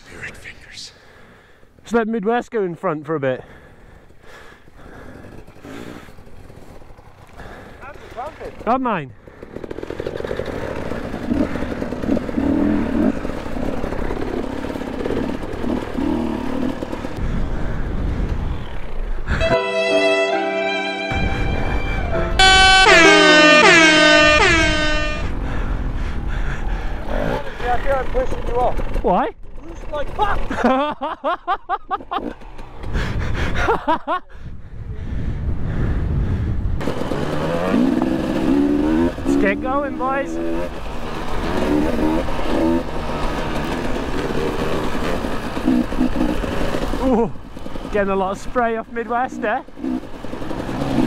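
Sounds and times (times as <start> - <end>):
two-stroke motorbike engine idling: 3.6 - 17.2, 26.9 - 30.8, 38.0 - 51.0
air horn blast swooping down: 19.3 - 25.4
music: 19.4 - 22.6.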